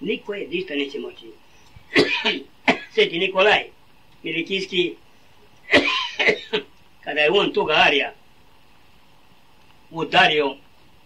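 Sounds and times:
man clearing throat: 1.9 - 3.0, 5.7 - 6.7
man coughing: 1.9 - 3.0, 5.7 - 6.7.

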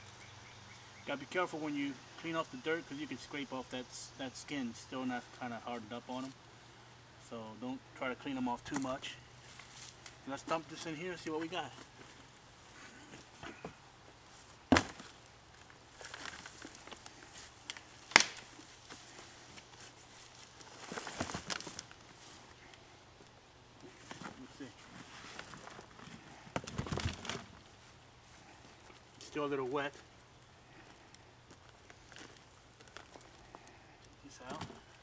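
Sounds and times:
rustling plants: 1.0 - 35.0.

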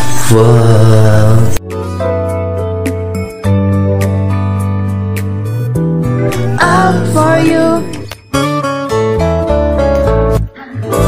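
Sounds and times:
pop ballad backing track: 0.0 - 11.0
sustained instrumental accompaniment: 1.6 - 11.0
person singing ad-lib: 6.3 - 8.1.

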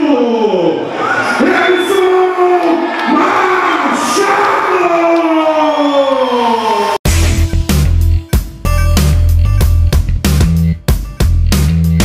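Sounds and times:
announcer's amplified voice: 0.0 - 6.9
crowd noise: 0.0 - 7.0.

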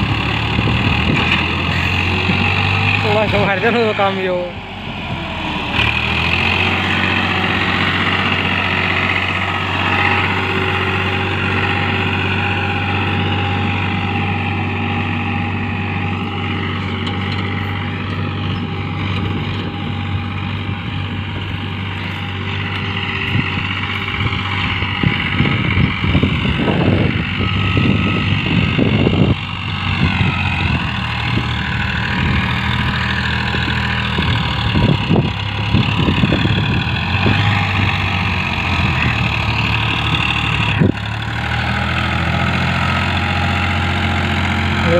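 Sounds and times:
low rumbling bursts: 0.0 - 44.9
tractor diesel engine under load: 0.0 - 44.9.

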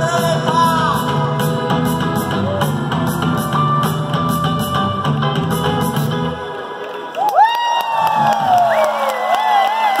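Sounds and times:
live rock band playing: 0.0 - 7.0
crowd cheering: 6.4 - 10.0.

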